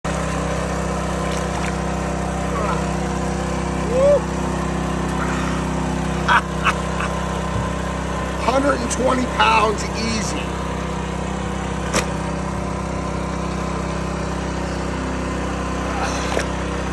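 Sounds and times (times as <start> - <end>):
small engine running: 0.1 - 16.9.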